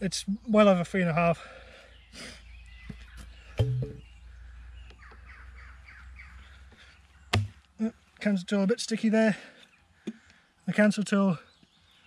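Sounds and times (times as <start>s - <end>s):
faint birdsong: 0.0s - 12.0s
axe knocking in wood: 3.6s - 4.0s, 7.3s - 7.6s.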